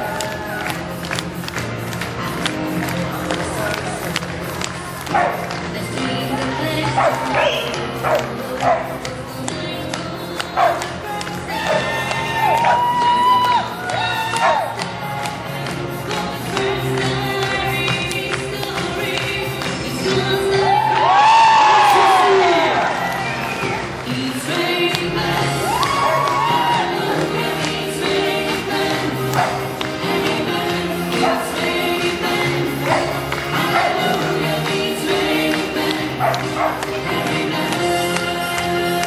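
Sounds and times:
upbeat music over sound system: 0.0s - 39.0s
audience cheering and whooping: 11.5s - 14.9s, 20.5s - 24.0s, 25.4s - 27.5s.

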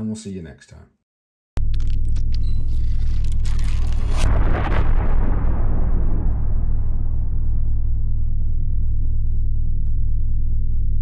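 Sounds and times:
deep rumble drone: 1.6s - 11.0s.

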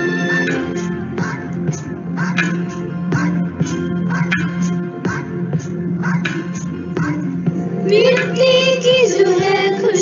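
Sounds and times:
girls singing together: 7.8s - 10.0s.

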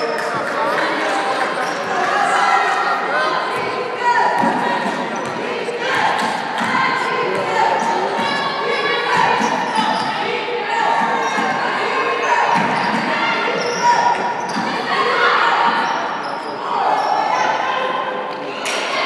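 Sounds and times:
voices calling in echoing gym: 0.0s - 19.0s.

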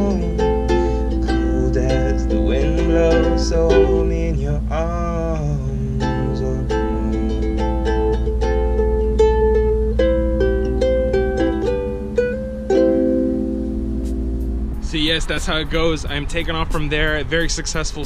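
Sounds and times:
person singing: 0.0s - 8.4s
ukulele fingerpicked: 0.0s - 14.8s.

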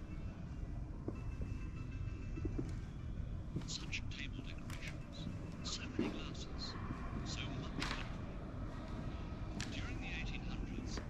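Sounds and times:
hushed voices whispering: 3.6s - 8.1s.

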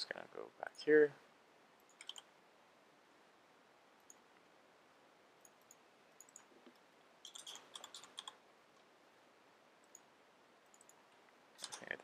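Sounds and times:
keyboard and mouse clicks: 1.8s - 2.3s, 5.4s - 8.4s, 10.7s - 11.0s, 11.6s - 12.0s.

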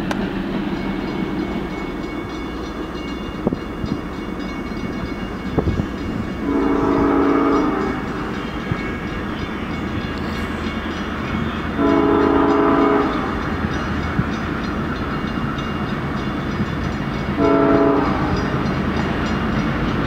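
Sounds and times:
train rumble: 0.0s - 20.0s
locomotive air horn blasts: 6.4s - 8.8s, 10.2s - 13.6s, 17.4s - 18.6s.

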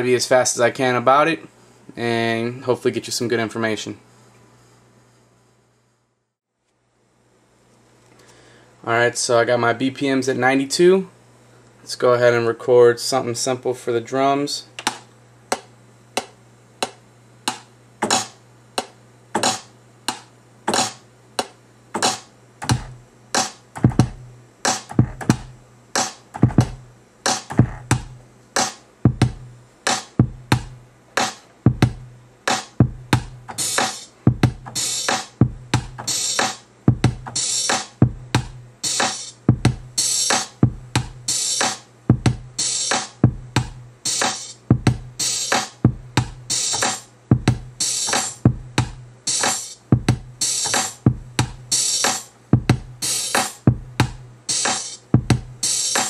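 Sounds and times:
bright hi-hat: 16.8s - 56.0s
kick drum hits: 23.8s - 24.2s, 25.0s - 25.5s, 26.4s - 26.8s, 27.5s - 28.2s, 29.1s - 29.5s, 30.2s - 30.8s, 31.7s - 32.1s, 32.8s - 33.4s, 34.3s - 34.8s, 35.4s - 36.1s, 36.9s - 37.4s, 38.0s - 38.6s, 39.5s - 39.9s, 40.6s - 41.2s, 42.1s - 42.6s, 43.2s - 43.8s, 44.7s - 45.2s, 45.9s - 46.4s, 47.3s - 47.7s, 48.5s - 49.0s, 50.0s - 50.4s, 51.1s - 51.6s, 52.6s - 52.9s, 53.7s - 54.2s, 55.2s - 55.5s.

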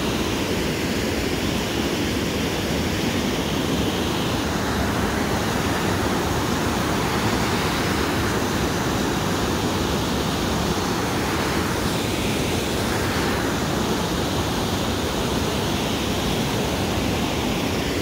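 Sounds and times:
river rushing over a weir: 0.0s - 18.0s.

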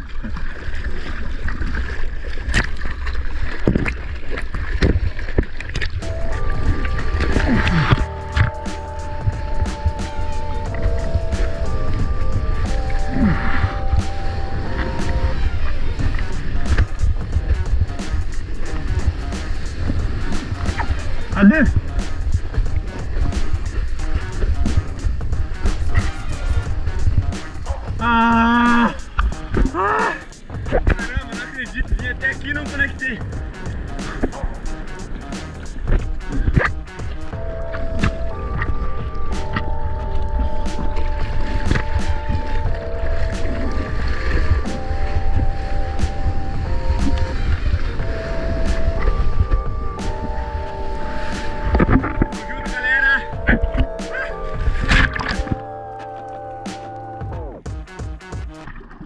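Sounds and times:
sharp splash clicks: 0.0s - 6.4s, 54.8s - 57.1s
surf rushing water rumble: 0.0s - 59.0s
wind on microphone: 3.5s - 55.7s
man yelling: 28.0s - 29.0s, 29.7s - 30.3s.

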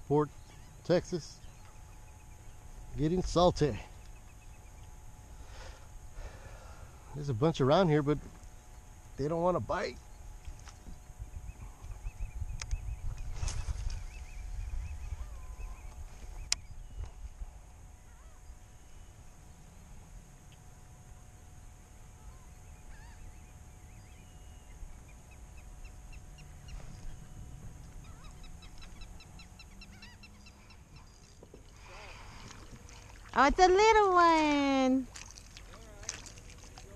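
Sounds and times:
faint bird calls: 0.0s - 7.2s, 10.0s - 20.6s, 22.0s - 36.9s
steady low rumble: 0.0s - 34.2s.

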